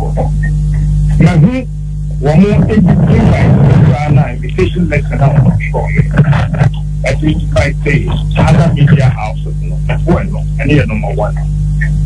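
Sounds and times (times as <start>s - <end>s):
electrical mains hum: 0.0s - 12.0s
person speaking: 0.0s - 12.0s.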